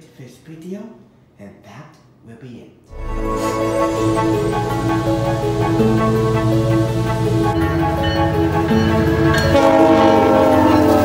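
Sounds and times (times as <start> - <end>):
locomotive air horn chord: 2.9 - 11.0.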